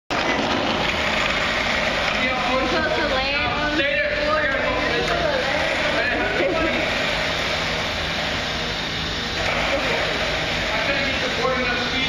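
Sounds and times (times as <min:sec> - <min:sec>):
skateboard wheels rolling on concrete: 0:00.1 - 0:02.8.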